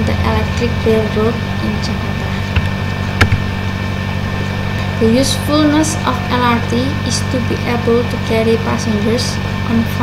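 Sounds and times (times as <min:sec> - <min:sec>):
electrical hum and hiss: 0:00.0 - 0:10.0
sharp click: 0:02.6 - 0:03.5.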